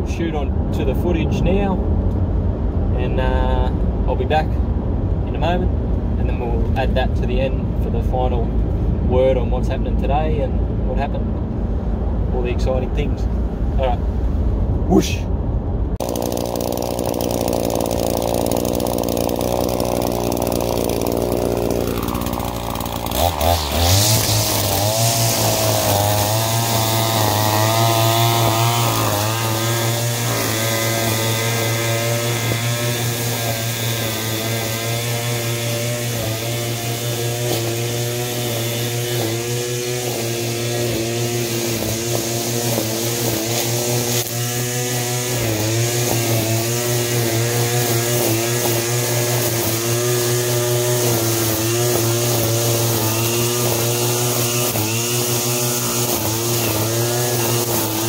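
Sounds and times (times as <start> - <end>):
string trimmer cutting grass: 16.0 - 58.0.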